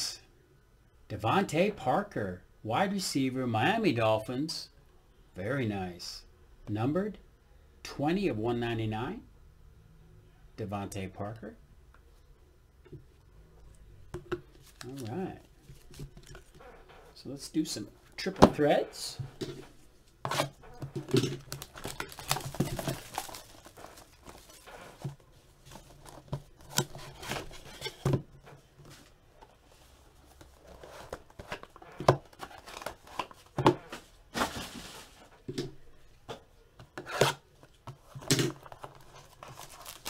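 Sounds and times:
rustling: 0:19.2 - 0:35.4, 0:37.2 - 0:40.0
packaging tearing and crinkling: 0:20.3 - 0:25.0, 0:38.4 - 0:40.0.

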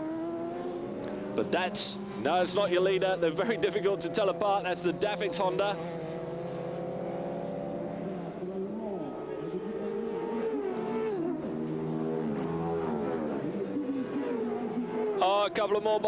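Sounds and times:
racing motorcycles passing by: 0:00.0 - 0:16.0.

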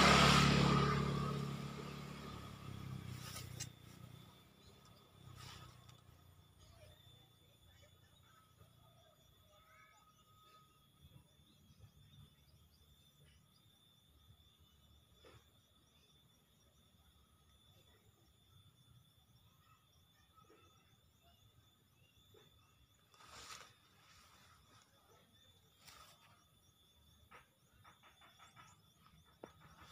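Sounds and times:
faint steady high tone: 0:06.5 - 0:12.3.

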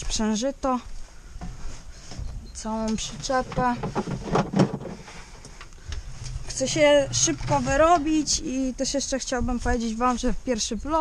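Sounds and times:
knocks and rustling in cab: 0:01.4 - 0:08.7.

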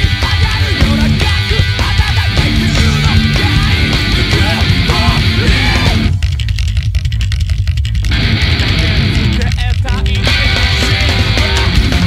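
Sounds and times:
drum hits: 0:00.0 - 0:06.5
metal band playing: 0:00.0 - 0:06.7, 0:08.0 - 0:12.0
low bass rumble: 0:00.8 - 0:12.0.

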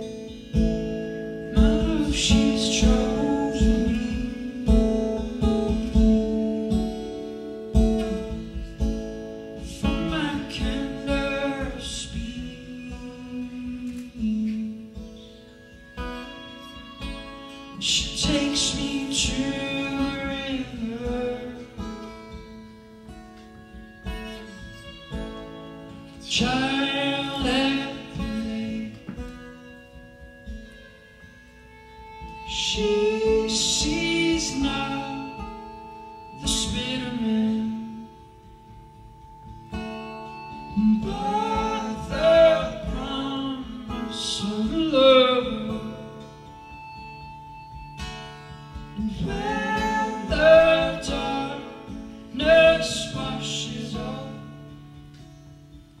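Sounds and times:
guitar chords ringing: 0:00.0 - 0:56.0
person singing: 0:01.4 - 0:08.9, 0:09.6 - 0:15.4, 0:16.6 - 0:22.4, 0:24.2 - 0:29.7, 0:32.2 - 0:39.1, 0:40.3 - 0:47.9, 0:48.9 - 0:54.8.

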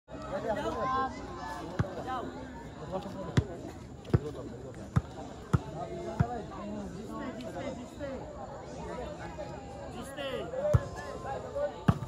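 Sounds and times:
crowd chatter: 0:00.1 - 0:12.0.

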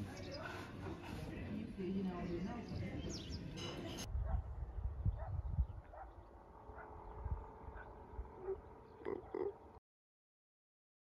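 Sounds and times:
wind rumble on microphone: 0:02.6 - 0:08.7.

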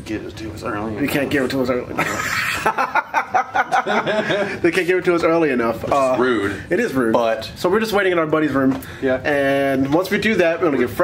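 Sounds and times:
man laughing: 0:02.0 - 0:04.6.

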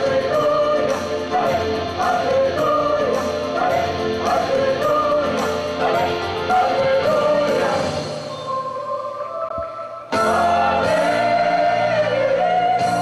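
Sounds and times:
choir singing gospel: 0:00.0 - 0:13.0.

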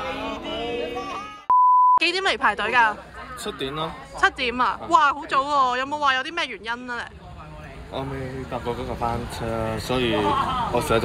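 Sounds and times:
crowd singing a chant: 0:00.0 - 0:01.4
high-pitched censor bleep: 0:01.5 - 0:02.0.

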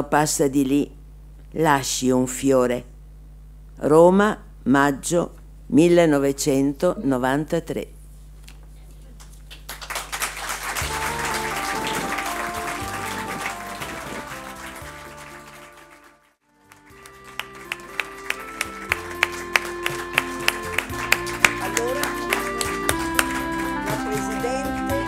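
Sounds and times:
audience applause: 0:09.5 - 0:25.0
instrumental music: 0:10.7 - 0:25.0
instrumental music with steady beat: 0:10.8 - 0:25.0.

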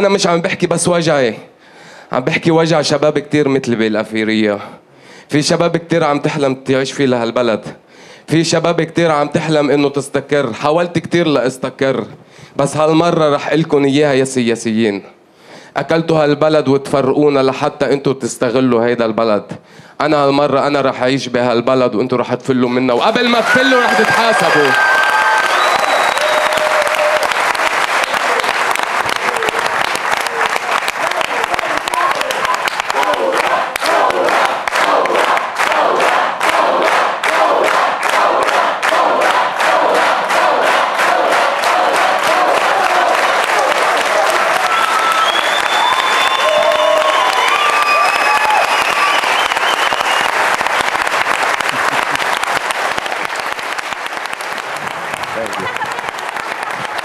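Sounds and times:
audience applauding and cheering: 0:23.0 - 0:57.0
rhythmic clapping in unison: 0:23.8 - 0:57.0.

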